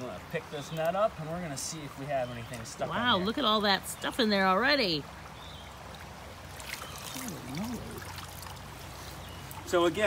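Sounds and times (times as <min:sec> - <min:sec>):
rush of shallow creek: 0:00.0 - 0:10.0
water trickling: 0:00.0 - 0:10.0.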